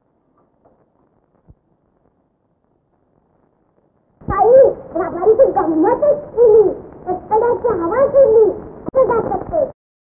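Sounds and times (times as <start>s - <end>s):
child talking in whiny voice: 4.3s - 9.7s.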